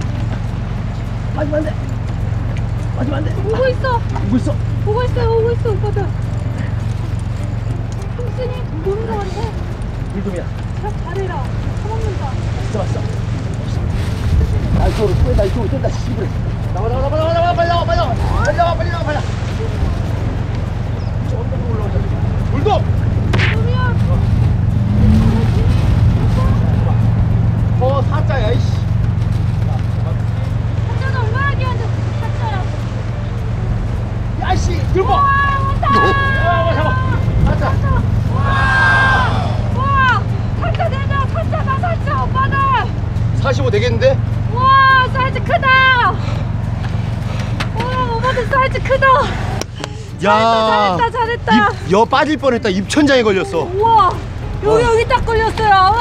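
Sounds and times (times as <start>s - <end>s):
wind buffeting microphone: 0.0s - 56.0s
steady low hum: 15.6s - 56.0s
people crying out excitedly: 35.1s - 40.3s.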